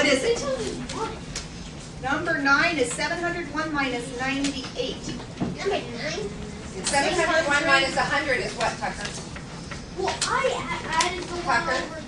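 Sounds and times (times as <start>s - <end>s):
teacher's voice: 0.0s - 1.2s, 2.0s - 9.2s, 10.0s - 12.0s
children talking and murmuring: 0.0s - 12.0s.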